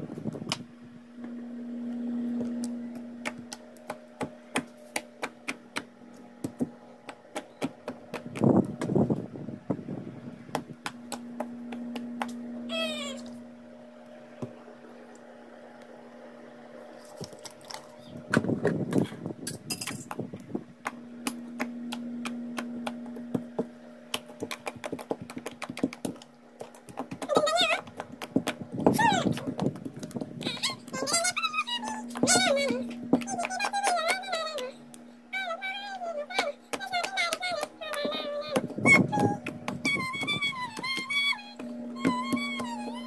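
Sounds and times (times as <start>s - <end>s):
steady low hum: 0.0s - 43.0s
high wavering singing voice: 12.5s - 13.5s, 30.4s - 43.0s.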